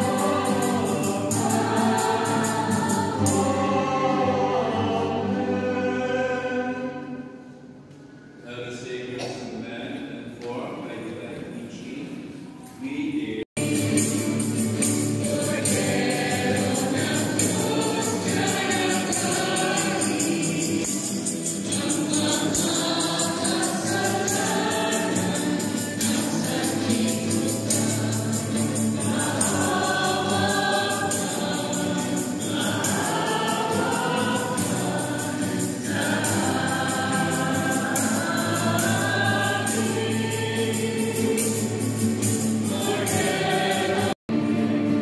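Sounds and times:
congregation singing a hymn: 0.0s - 9.4s, 12.9s - 45.0s.

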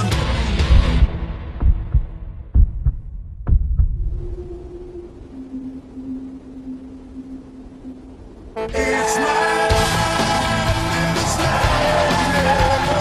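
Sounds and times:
heartbeat thumps: 0.6s - 4.4s
low steady hum tone: 3.9s - 8.8s.

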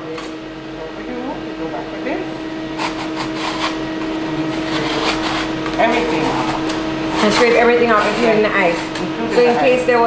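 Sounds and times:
steady hum: 0.0s - 10.0s
scraper scraping ice cream: 2.8s - 10.0s.

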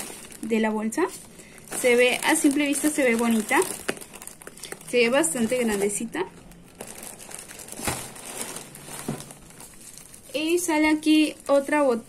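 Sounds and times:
plastic bags crinkling: 0.0s - 12.0s.

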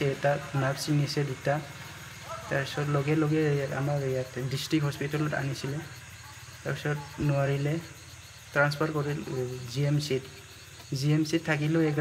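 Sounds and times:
man speaking calmly: 0.0s - 6.0s, 6.6s - 12.0s
crickets chirring: 0.0s - 12.0s.

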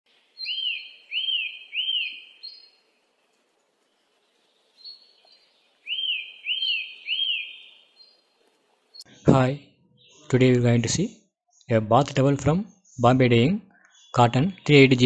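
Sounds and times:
bird-like whistled chirping: 0.4s - 2.8s, 5.8s - 8.2s.

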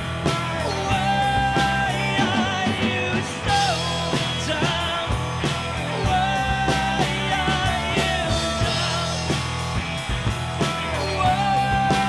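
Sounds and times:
bass guitar: 0.0s - 12.0s
drum kit hits: 0.0s - 12.0s
electric guitar: 0.0s - 12.0s.

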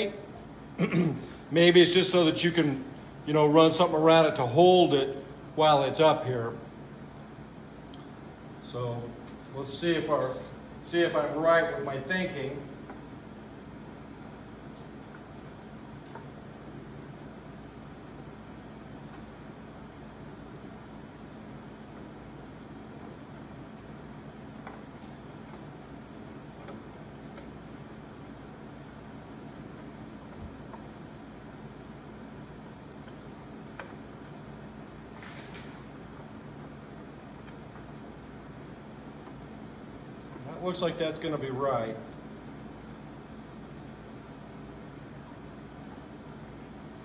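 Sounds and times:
fan hum: 0.0s - 47.0s.

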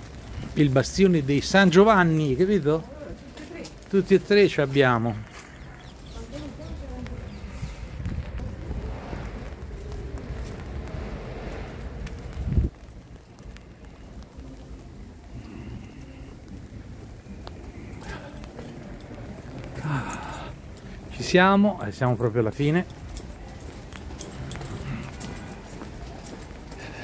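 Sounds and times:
wind buffeting microphone: 5.3s - 21.1s.

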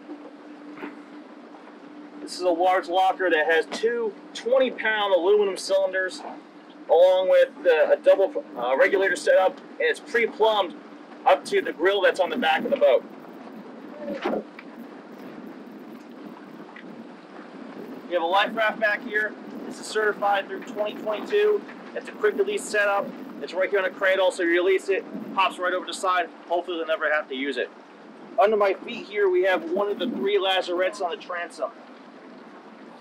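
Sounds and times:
low background hiss: 0.0s - 33.0s
wind rushing over microphone: 7.3s - 26.4s, 28.1s - 31.0s.

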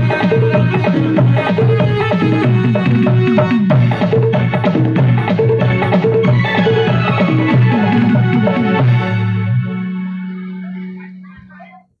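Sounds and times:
faint voice: 10.6s - 12.0s.

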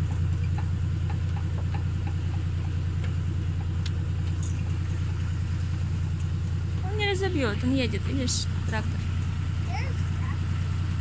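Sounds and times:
tractor engine droning: 0.0s - 11.0s.

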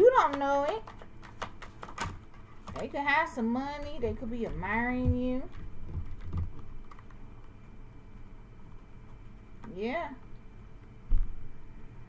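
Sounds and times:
fingernails and cards tapping on table: 0.1s - 2.9s, 3.8s - 7.5s.

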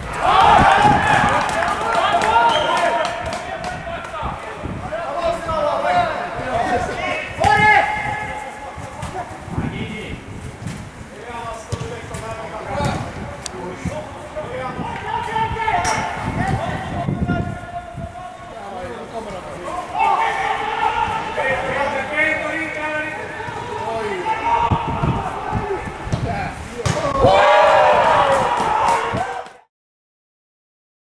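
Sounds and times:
footballers shouting: 0.0s - 10.2s, 11.1s - 29.7s
ball being kicked: 26.1s - 27.2s.

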